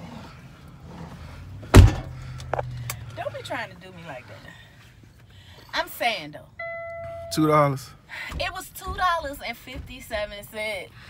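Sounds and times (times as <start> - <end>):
truck door slamming: 1.7 - 2.2.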